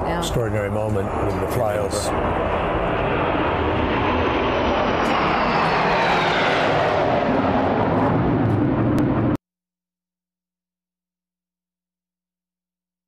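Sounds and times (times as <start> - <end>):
jets flying overhead: 0.0 - 9.4.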